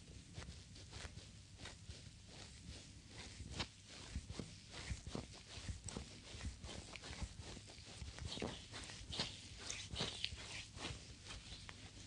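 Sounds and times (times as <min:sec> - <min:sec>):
hands rubbing skin: 0:00.0 - 0:12.0.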